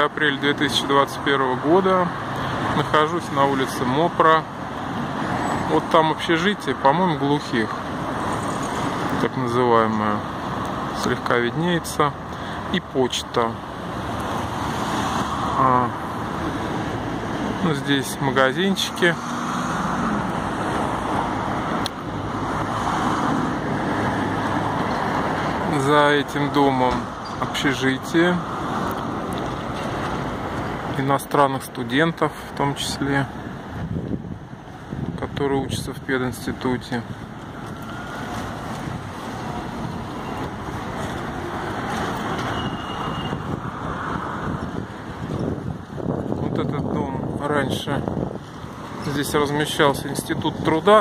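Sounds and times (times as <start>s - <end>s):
cars driving past: 0.0s - 51.0s
wind on microphone: 33.6s - 35.4s, 37.0s - 49.2s.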